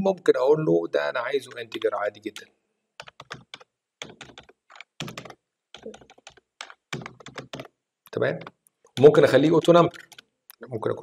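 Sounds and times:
keyboard typing clicks: 3.0s - 7.7s, 9.9s - 10.2s.

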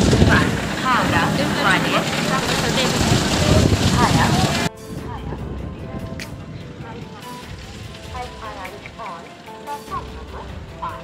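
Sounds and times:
steady low rumble: 0.0s - 9.1s
people talking: 0.0s - 11.0s.

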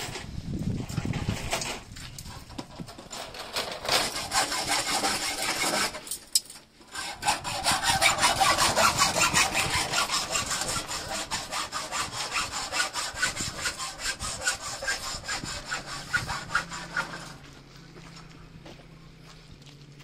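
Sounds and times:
hand saw sawing: 1.0s - 6.2s, 6.8s - 17.5s.

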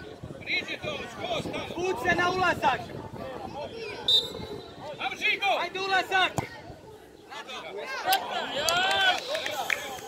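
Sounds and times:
referee's whistle blast: 4.0s - 4.8s.

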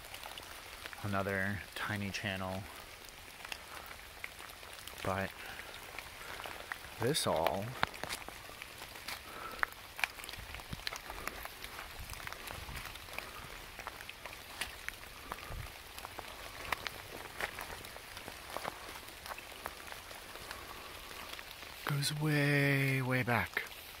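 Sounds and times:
rain hissing on leaves: 0.0s - 24.0s
water drips ticking: 0.0s - 24.0s.

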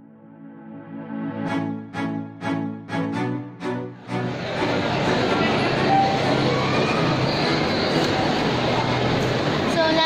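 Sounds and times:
shopping mall crowd roar: 3.0s - 10.0s.

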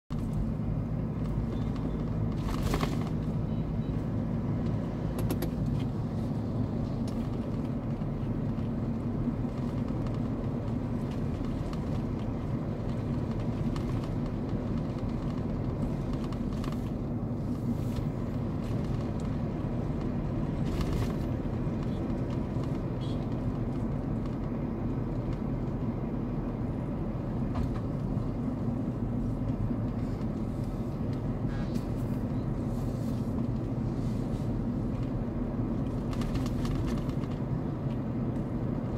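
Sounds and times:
car engine hum: 0.1s - 38.9s
road noise inside car: 0.1s - 38.9s.

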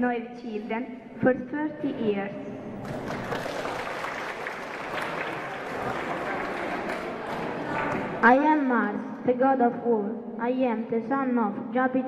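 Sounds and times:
audience applauding: 2.8s - 8.2s.

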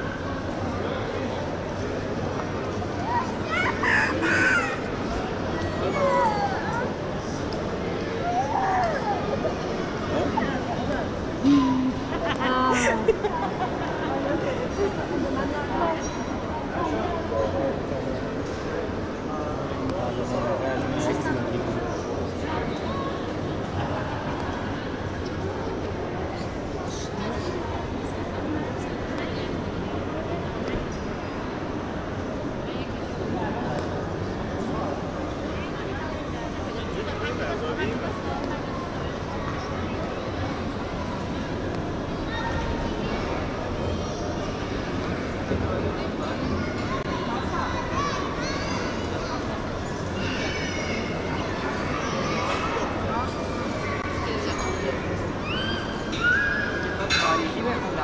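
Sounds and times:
crowd murmur in a large hall: 0.0s - 58.0s
steady background hum: 0.0s - 58.0s.

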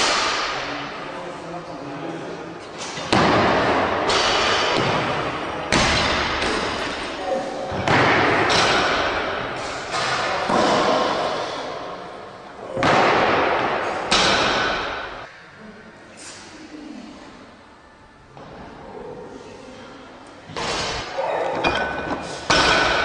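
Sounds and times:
barbells crashing on platform: 7.8s - 11.3s, 20.6s - 23.0s.

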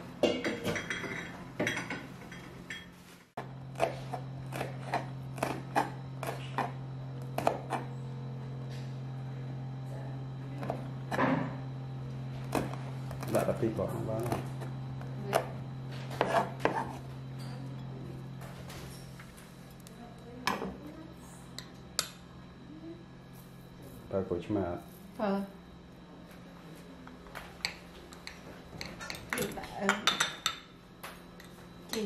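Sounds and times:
utensils clinking against dishes: 0.2s - 3.0s, 27.6s - 30.8s, 31.4s - 32.0s
knife chopping on wooden board: 3.7s - 7.9s, 14.2s - 17.0s.

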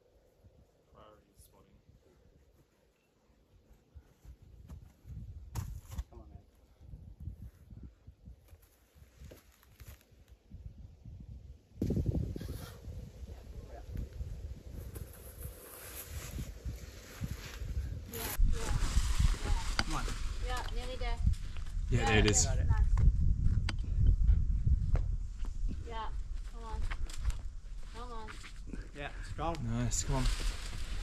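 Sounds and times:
wind rumbling on microphone: 4.3s - 9.4s, 10.0s - 31.0s.

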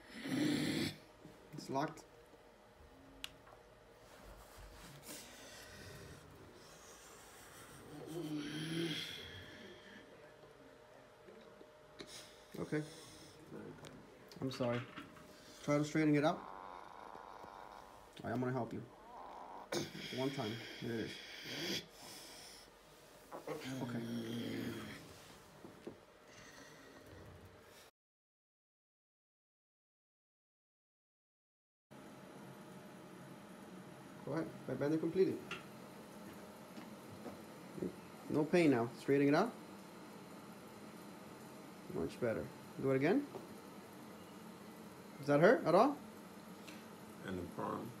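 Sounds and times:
man humming: 7.8s - 9.6s
man breathing hard and straining: 19.6s - 22.7s.

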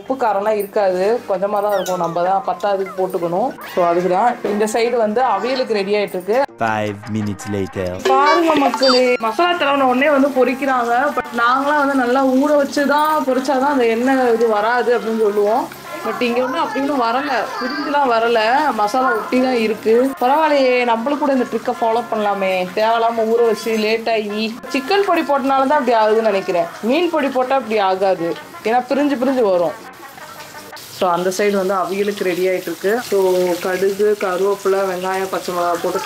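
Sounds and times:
person's voice gliding in pitch: 6.5s - 9.0s
person talking: 6.5s - 9.4s
oil sizzling in a pan: 8.9s - 36.0s.

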